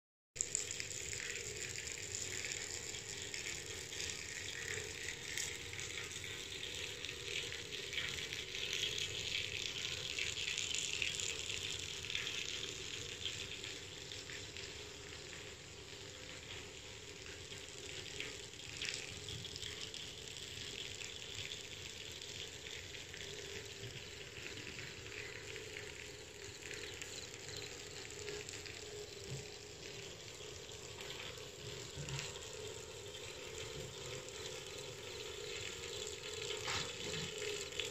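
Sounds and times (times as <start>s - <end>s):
running splashing water: 23.2s - 37.9s.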